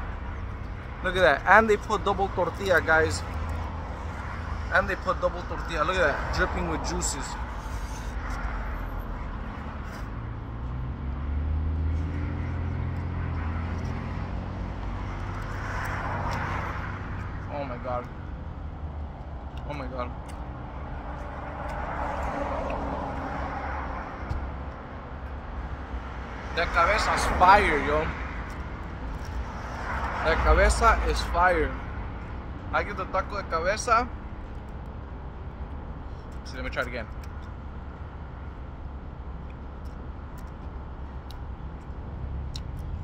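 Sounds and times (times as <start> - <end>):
car passing: 0.0 - 36.1
low rumble of road traffic: 0.0 - 43.0.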